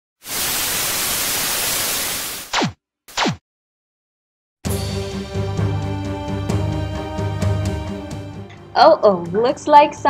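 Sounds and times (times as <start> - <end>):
television static hiss: 0.2 - 2.4.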